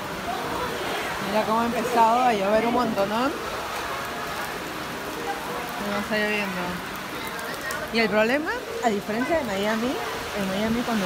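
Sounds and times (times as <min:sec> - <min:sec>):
heavy rain on pavement: 0:00.0 - 0:11.0.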